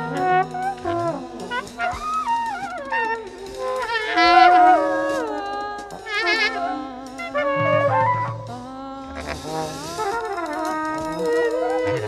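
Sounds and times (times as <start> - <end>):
free jazz horns: 0.0 - 12.0
loud wavering held note: 0.0 - 12.0.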